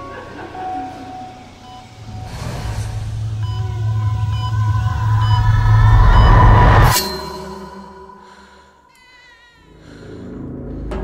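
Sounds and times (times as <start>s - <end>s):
deep rumble: 2.0s - 7.0s
held high tones: 3.2s - 9.1s.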